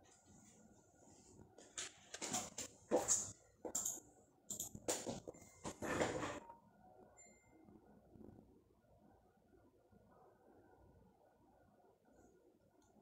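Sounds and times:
person rustling by office chair: 0.0 - 3.4.

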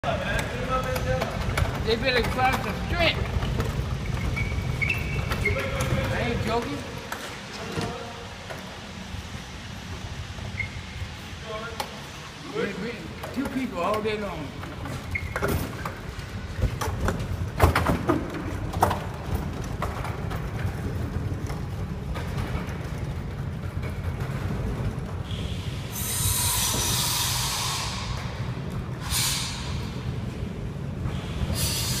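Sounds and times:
wooden box rolling on concrete: 0.3 - 8.7, 13.2 - 25.3
cabinet wheels squealing on concrete: 1.8 - 6.7, 14.8 - 16.0.

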